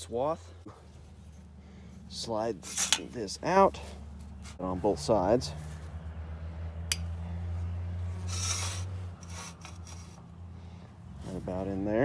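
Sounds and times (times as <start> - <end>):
metal scraping on metal: 2.6 - 3.2, 8.2 - 10.2
small engine humming: 3.5 - 11.2.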